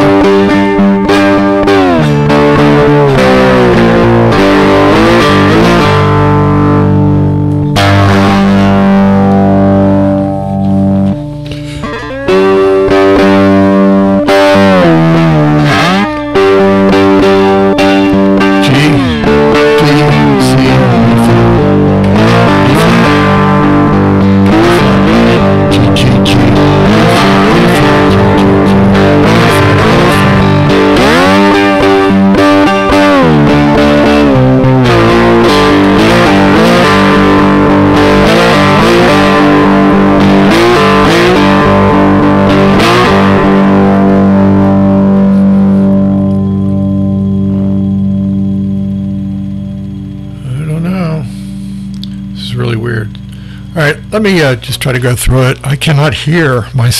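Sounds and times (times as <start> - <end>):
blues guitar playing: 0.0 - 56.9.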